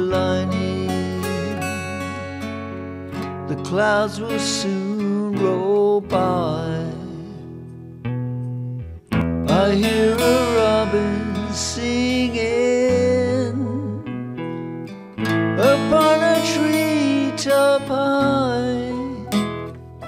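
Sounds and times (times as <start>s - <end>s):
man singing: 0.0s - 2.5s, 3.4s - 7.8s, 9.4s - 14.3s, 15.5s - 19.5s
bass: 0.0s - 20.0s
strummed guitar: 0.0s - 20.0s.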